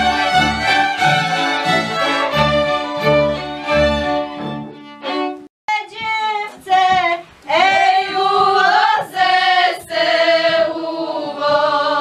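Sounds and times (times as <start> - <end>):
group singing folk song: 0.0 - 3.2, 6.6 - 12.0
fiddle: 0.0 - 5.5
woman singing lead: 5.7 - 12.0.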